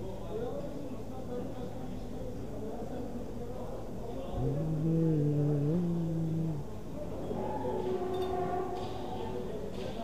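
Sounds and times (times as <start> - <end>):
indoor market hum: 0.0 - 10.0.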